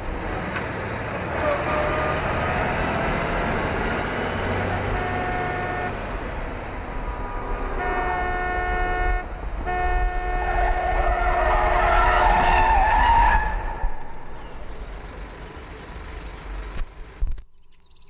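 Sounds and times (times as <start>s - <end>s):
vehicle road noise: 0.0s - 18.0s
horn blaring: 1.6s - 2.4s, 4.5s - 6.1s, 7.6s - 14.0s.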